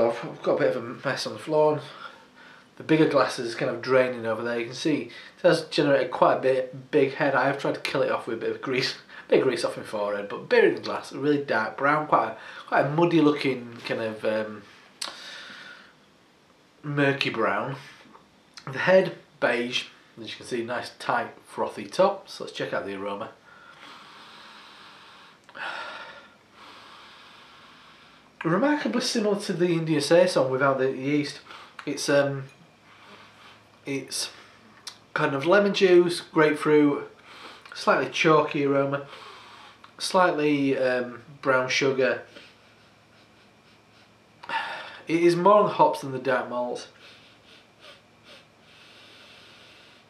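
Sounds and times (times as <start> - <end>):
faint steady breath: 1.8 - 2.8, 5.0 - 5.4, 9.0 - 9.3, 12.3 - 12.7, 14.5 - 16.1, 17.7 - 18.2, 23.4 - 28.4, 31.4 - 31.9, 32.5 - 34.8, 37.1 - 37.8, 39.0 - 40.0, 42.2 - 45.1, 46.8 - 50.0.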